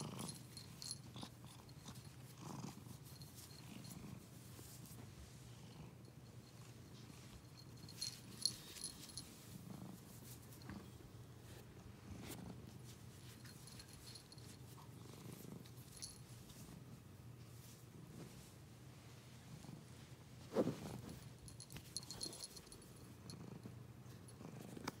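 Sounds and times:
light metallic jingles: 0.0s - 2.3s, 6.1s - 9.6s, 13.2s - 14.9s, 15.6s - 16.3s, 21.4s - 23.4s
cat purring: 0.0s - 4.8s
fur and blanket rustling: 1.7s - 5.4s, 11.4s - 16.8s, 17.4s - 23.0s.

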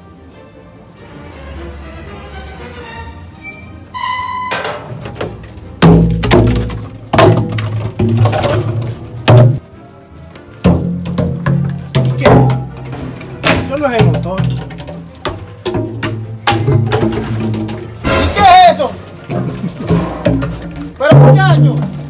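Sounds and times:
background music: 0.0s - 22.0s
plastic jugs thunking on metal rack: 4.6s - 9.6s, 10.6s - 18.2s, 19.2s - 22.0s.

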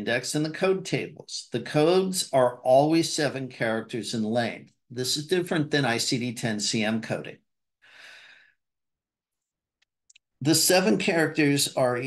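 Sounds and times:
breath into microphone: 7.8s - 8.6s.

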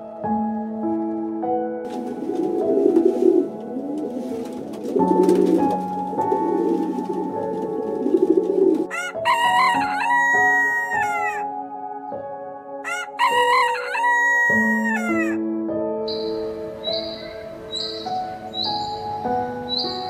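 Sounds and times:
background music: 0.0s - 20.0s
pigeon cooing: 1.9s - 9.0s
rooster crowing: 8.9s - 11.4s, 12.8s - 15.4s.

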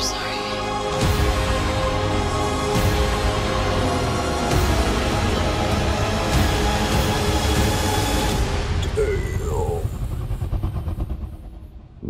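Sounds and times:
dense rumble of effects: 8.2s - 12.0s.

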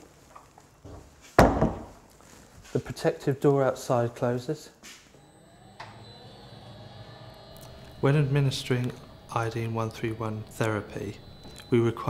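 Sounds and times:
faint mechanical hum: 0.0s - 12.0s.

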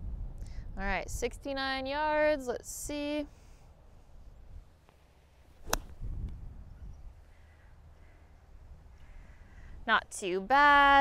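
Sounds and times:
wind rumble on microphone: 0.0s - 2.2s, 5.6s - 7.3s
golf club striking ball: 5.6s - 6.0s.

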